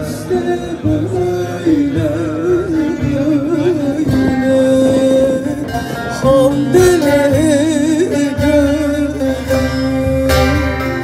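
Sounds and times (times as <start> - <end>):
plucked string accompaniment: 0.0 - 11.0.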